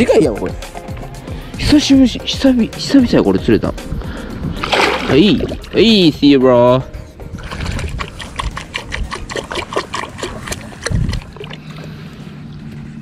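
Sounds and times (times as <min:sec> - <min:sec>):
water dripping and trickling: 0:04.6 - 0:06.2, 0:07.4 - 0:11.9.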